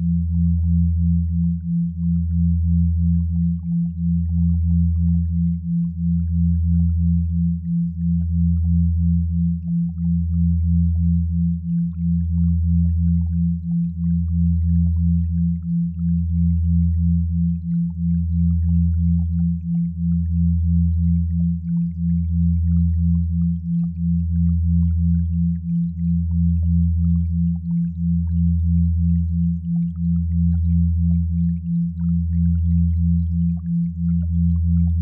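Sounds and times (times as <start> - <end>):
low steady sine hum: 0.0 - 35.0.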